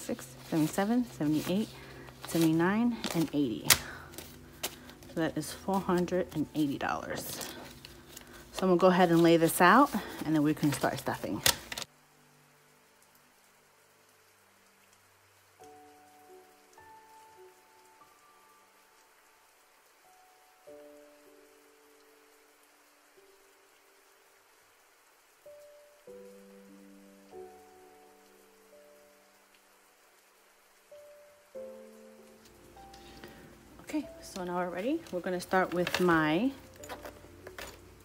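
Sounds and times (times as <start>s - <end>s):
steady hiss: 0.0s - 38.0s
soft held music chords: 31.1s - 38.0s.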